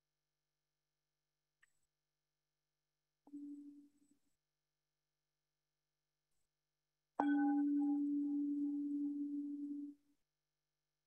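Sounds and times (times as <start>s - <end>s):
singing bowl ringing: 7.2s - 10.0s.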